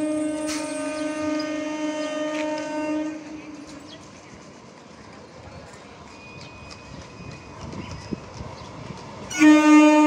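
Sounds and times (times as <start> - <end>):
train horn blast: 0.0 - 3.8, 9.3 - 10.0
train running on track: 0.0 - 10.0.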